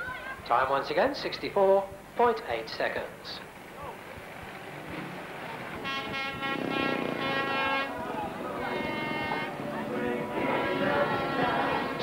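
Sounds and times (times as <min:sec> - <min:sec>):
motorcycle engines revving: 0:03.4 - 0:12.0
background voices: 0:07.6 - 0:12.0.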